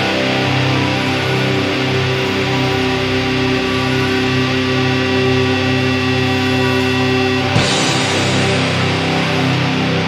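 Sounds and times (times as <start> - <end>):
distorted electric guitar droning: 0.0 - 10.0.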